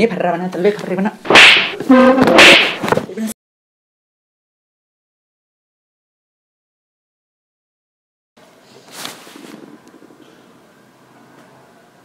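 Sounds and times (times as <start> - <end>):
hand slapping a head: 1.3 - 3.0.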